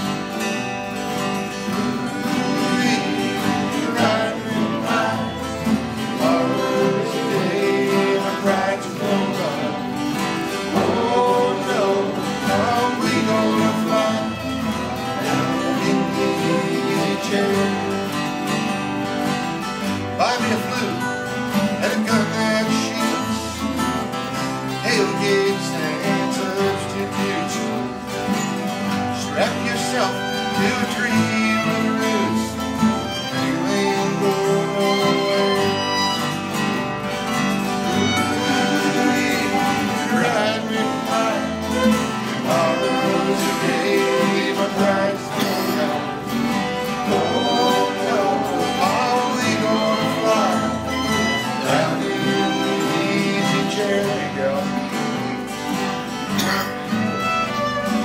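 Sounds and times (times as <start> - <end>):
bluegrass string band playing: 0.0 - 58.0.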